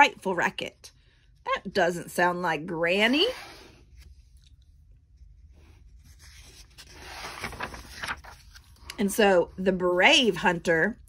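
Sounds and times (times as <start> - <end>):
paper page rustling: 4.0 - 9.0.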